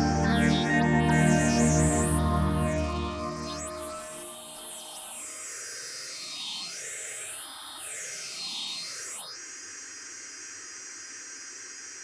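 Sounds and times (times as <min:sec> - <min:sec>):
white-noise hiss: 0:00.0 - 0:12.0.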